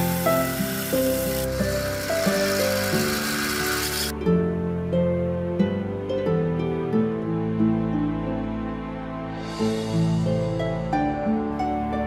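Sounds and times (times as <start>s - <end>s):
belt grinder grinding steel: 0.0s - 4.1s
background music: 0.0s - 12.0s.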